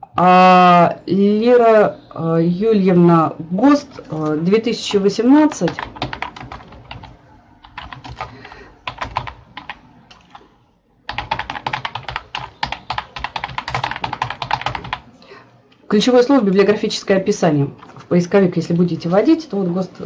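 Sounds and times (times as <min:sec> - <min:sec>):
typing on computer keyboard: 0:05.4 - 0:10.5, 0:11.1 - 0:15.1.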